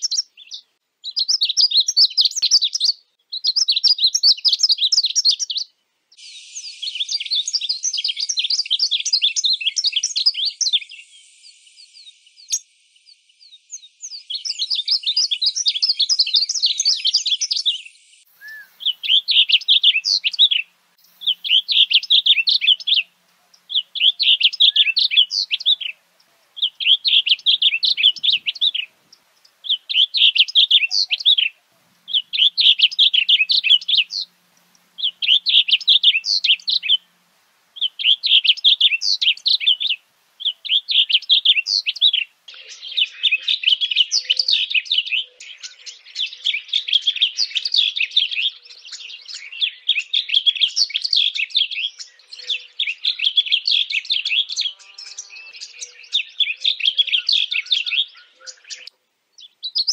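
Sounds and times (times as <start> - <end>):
bird singing: 0.0 - 37.2, 37.8 - 59.9.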